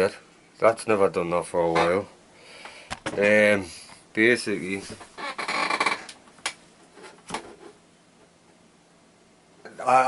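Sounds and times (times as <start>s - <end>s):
office chair rustling: 4.7s - 6.2s.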